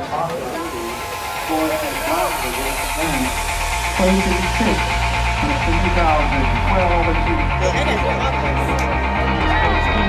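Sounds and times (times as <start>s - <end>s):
steady background noise: 0.0s - 8.9s
low rumble: 0.0s - 10.0s.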